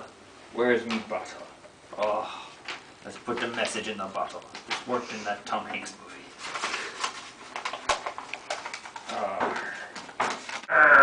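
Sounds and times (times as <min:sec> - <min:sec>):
paper crinkling: 0:02.6 - 0:10.7.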